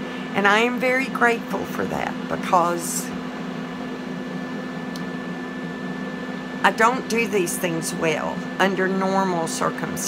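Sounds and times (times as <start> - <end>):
appliance motor humming: 0.0 - 10.0.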